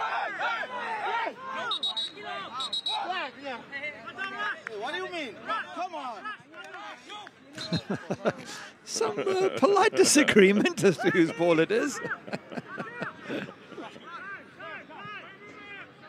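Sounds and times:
players shouting over one another: 0.0 - 3.2.

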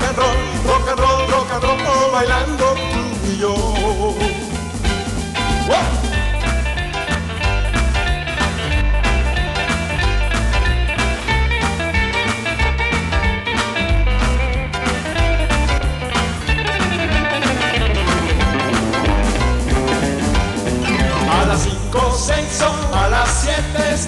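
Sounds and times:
bass: 0.0 - 24.0
rock and roll guitar: 0.0 - 24.0
steady drum beat: 0.0 - 24.0.

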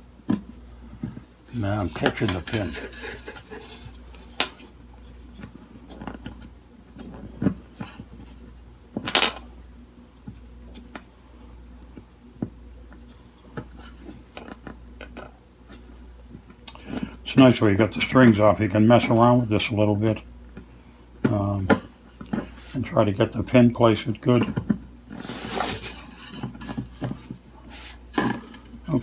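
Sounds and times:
short scraping rustle: 25.1 - 26.4.

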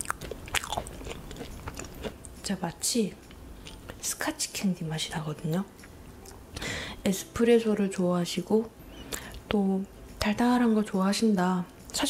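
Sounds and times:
person chewing: 0.0 - 2.4, 3.2 - 4.0.

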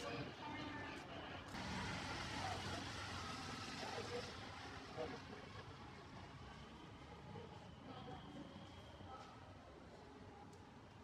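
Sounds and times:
road traffic hum: 1.5 - 7.0.

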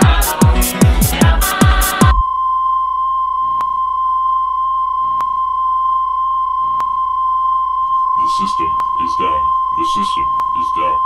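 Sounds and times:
high electronic beep tone: 2.0 - 11.0.

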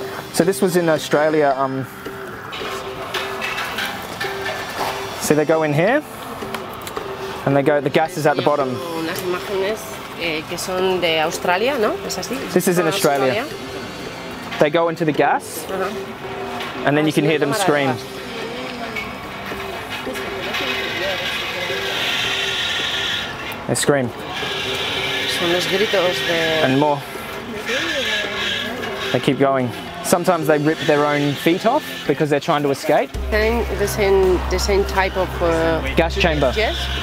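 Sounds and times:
steady machine noise: 0.0 - 37.0
background music held note: 32.9 - 37.0.

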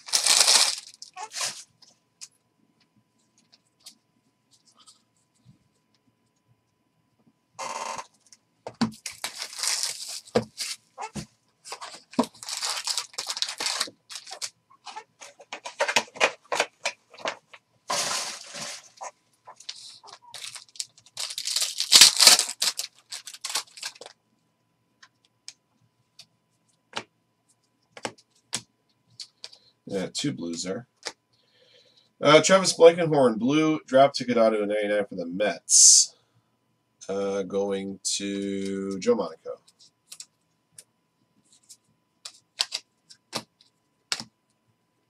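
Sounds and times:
card pack wrappers crinkling: 0.0 - 1.7, 8.8 - 24.2, 42.3 - 43.4.

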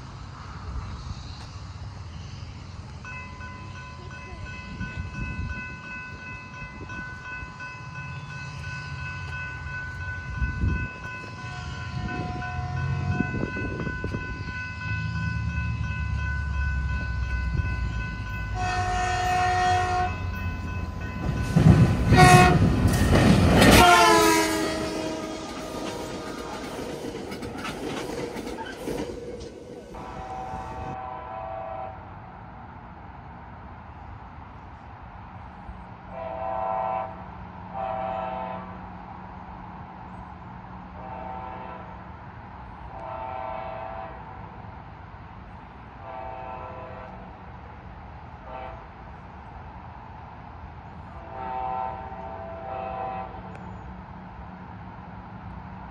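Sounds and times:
train rumble and clatter: 0.0 - 55.9
train horn blasts: 10.3 - 15.6, 17.0 - 20.8, 22.0 - 22.8, 23.6 - 26.9, 29.9 - 32.1, 36.1 - 38.8, 40.9 - 42.1, 42.9 - 44.4, 46.0 - 47.4, 48.4 - 49.0, 51.2 - 53.6.

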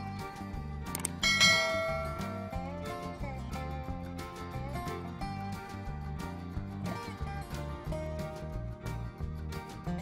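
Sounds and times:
country-style guitar music: 0.0 - 10.0
short click: 0.8 - 1.2
bright bell chime: 1.2 - 2.6.

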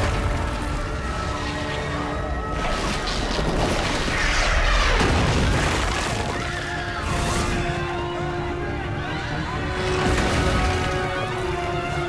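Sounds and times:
dramatic orchestral score: 0.0 - 12.0
crowd shouting in panic: 6.3 - 12.0.

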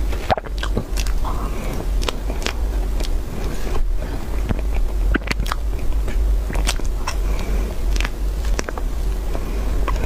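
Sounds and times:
chewing soft cake: 0.0 - 10.0
low rumble: 0.0 - 10.0
wet mouth clicks and smacks: 0.2 - 1.2, 4.5 - 7.2, 7.9 - 8.9.

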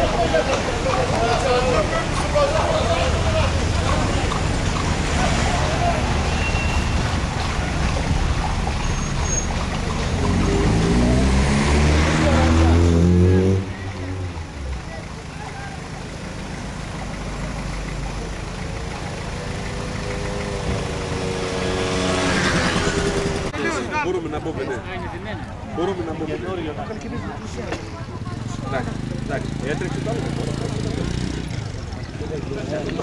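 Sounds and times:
engine hum: 0.0 - 23.6, 25.4 - 33.0
vehicle engine accelerating: 0.0 - 23.6, 28.2 - 33.0.

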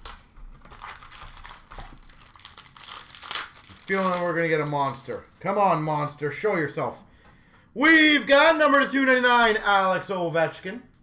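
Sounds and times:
foil wrapper tearing and crinkling: 0.0 - 5.2.

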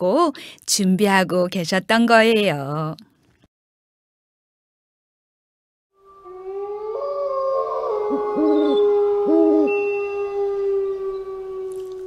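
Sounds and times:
owl hooting: 6.0 - 11.8.

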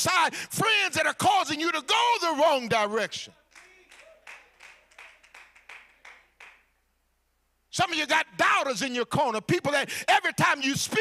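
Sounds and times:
faint scattered handclaps: 3.5 - 6.7.

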